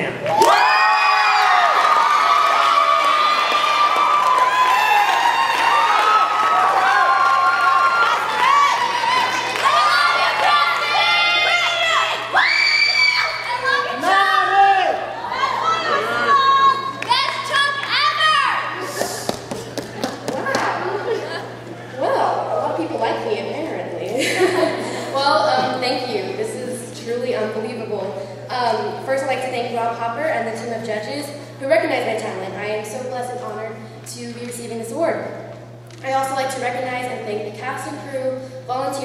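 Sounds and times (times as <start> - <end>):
audience cheering: 0.2 - 21.2
long high-pitched screams: 0.5 - 13.7
footsteps on stage floor: 19.0 - 20.8.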